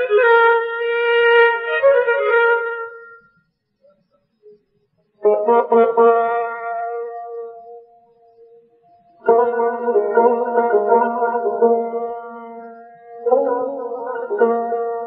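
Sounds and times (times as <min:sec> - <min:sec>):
solo melodic instrument: 0:09.2 - 0:15.0.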